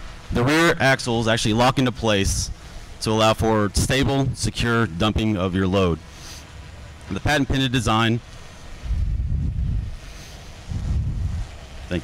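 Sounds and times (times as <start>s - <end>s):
wind buffeting a microphone: 1.6s - 5.3s, 8.2s - 12.0s.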